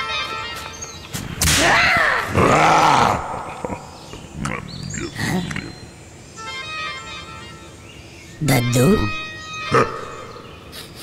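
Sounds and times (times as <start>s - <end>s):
cartoon grunts and clicks: 2.3s - 5.7s
cartoon animal call: 8.4s - 10.4s.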